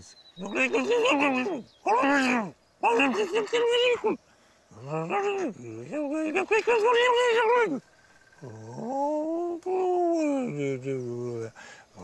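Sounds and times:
man making wordless calls: 0.0 - 12.0.

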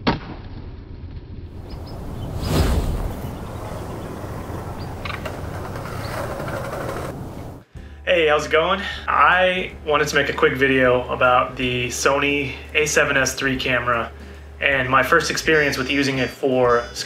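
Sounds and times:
street noise: 1.5 - 7.6.

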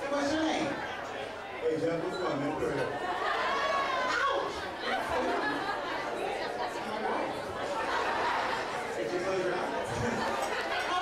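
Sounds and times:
echoing chatter of voices: 0.0 - 11.0.

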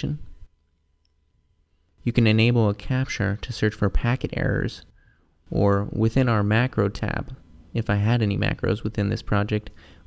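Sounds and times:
person speaking: 0.0 - 0.5, 2.0 - 10.0.

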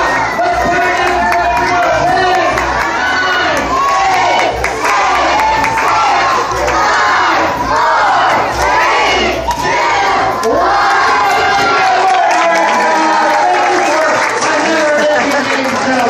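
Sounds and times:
children shouting and cheering: 0.0 - 16.0.

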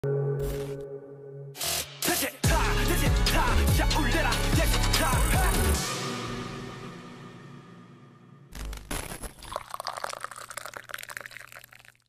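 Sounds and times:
liquid pouring into a glass: 9.3 - 12.0.

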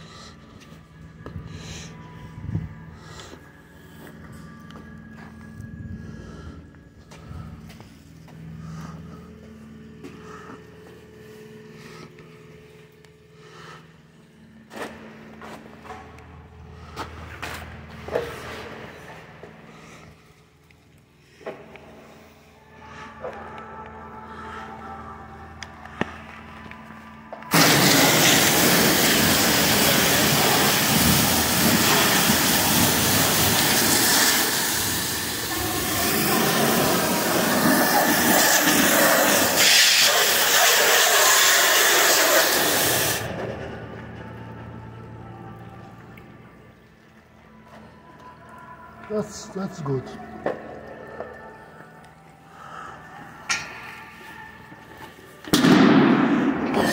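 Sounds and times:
low steady hum: 0.0 - 39.6, 43.2 - 56.9
pressure washer hissing: 27.5 - 43.3.

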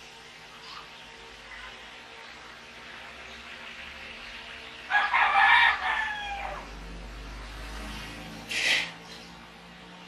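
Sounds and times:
rooster crowing: 4.9 - 6.8.

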